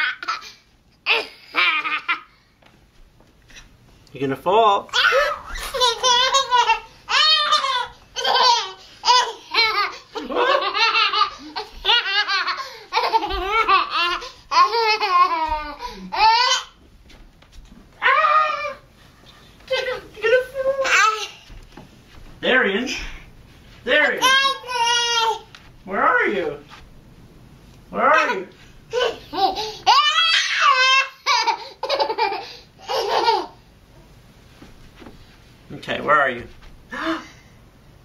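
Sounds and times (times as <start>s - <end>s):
toddler laughing: 0.0s - 2.3s, 5.0s - 16.8s, 28.2s - 33.6s.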